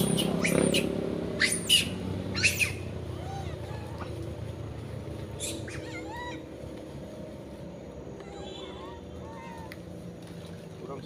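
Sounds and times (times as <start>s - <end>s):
high-pitched animal calls: 0.0s - 4.2s, 5.4s - 6.6s, 8.2s - 9.8s.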